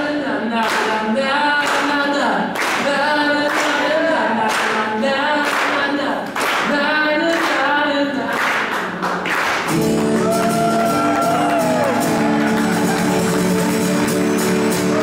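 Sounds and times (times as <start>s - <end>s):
hand claps: 0.6s - 0.9s, 1.6s - 1.9s, 2.6s - 3.8s, 5.4s - 7.7s, 8.3s - 15.0s.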